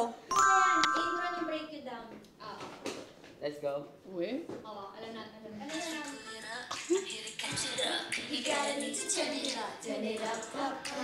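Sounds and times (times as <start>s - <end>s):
bell-like ding: 0.3s - 1.7s.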